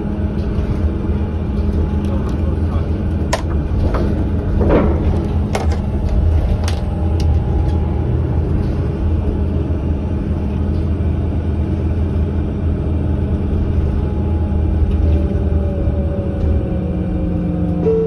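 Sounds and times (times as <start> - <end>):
bus engine rumble: 0.0 - 18.0.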